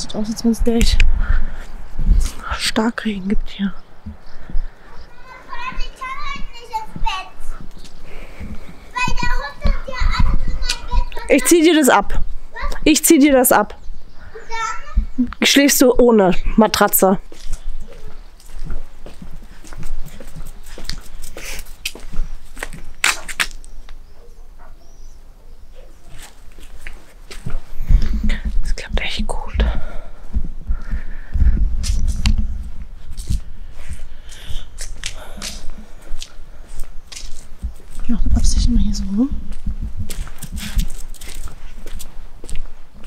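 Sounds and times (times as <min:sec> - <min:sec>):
soft breathy sounds: 0:07.4 - 0:09.0, 0:27.6 - 0:32.7, 0:33.4 - 0:37.1.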